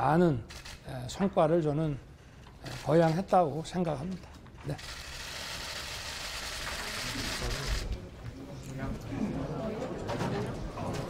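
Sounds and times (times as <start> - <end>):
people rustling and shuffling: 6.6 - 11.0.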